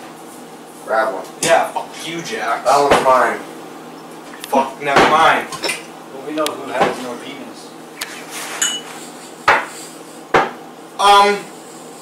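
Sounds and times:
voices: 4.4 - 8.3
glasses and cans clinking: 5.5 - 5.9, 8.6 - 9.0.

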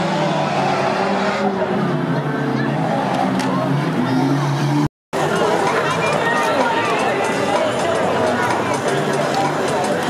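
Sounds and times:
racing car engines revving: 0.0 - 10.0.

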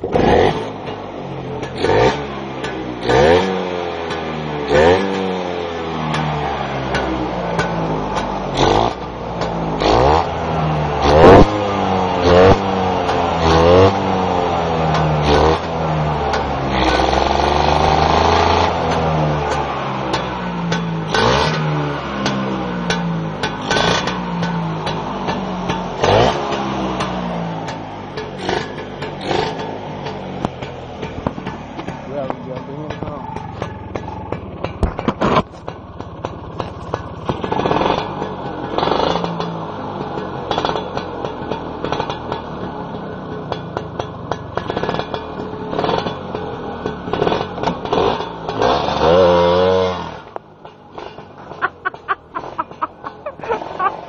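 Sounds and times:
scooter engine revving: 0.0 - 54.0.

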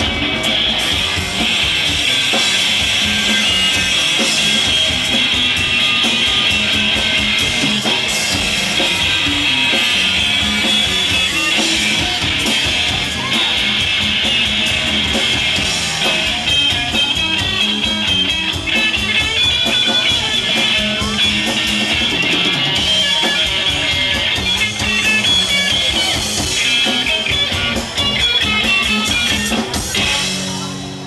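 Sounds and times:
electric guitar: 0.0 - 31.0
rock band playing live: 0.0 - 31.0.

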